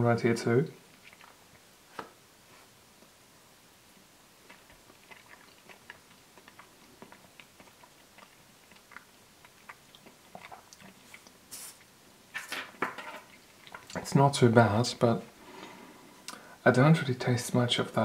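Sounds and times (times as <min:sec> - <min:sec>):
wet chewing mouth sounds: 0:00.9 - 0:01.6, 0:04.4 - 0:12.0, 0:13.3 - 0:14.1
hissy mouth sounds: 0:04.4 - 0:11.9.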